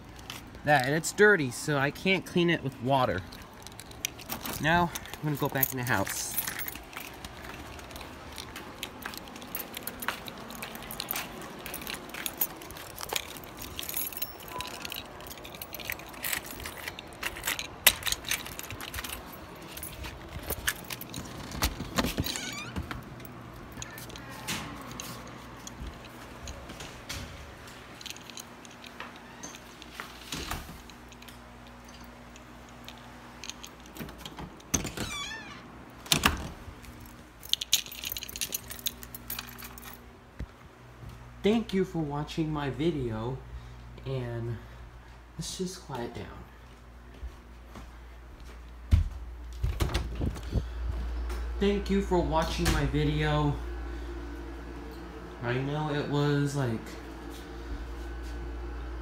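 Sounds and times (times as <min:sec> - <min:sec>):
keys jangling on a ring: 0:03.1 - 0:35.5, 0:36.9 - 0:40.1
key turning in a lock: 0:03.2 - 0:27.2, 0:30.8 - 0:40.0.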